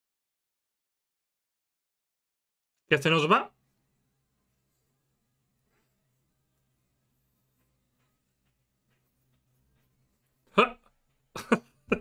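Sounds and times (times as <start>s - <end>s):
man laughing: 10.6s - 12.0s.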